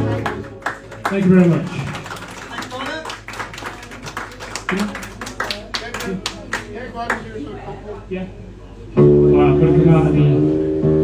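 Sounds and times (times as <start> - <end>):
audience clapping: 0.0 - 7.4.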